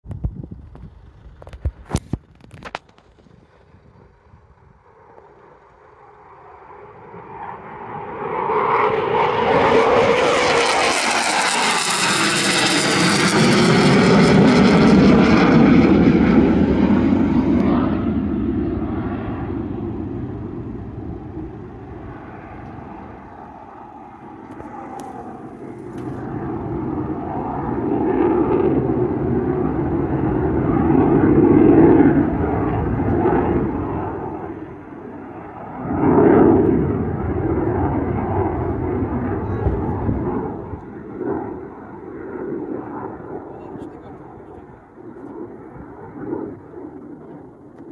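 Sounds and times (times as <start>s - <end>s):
jet passing low overhead: 0.1s - 47.9s.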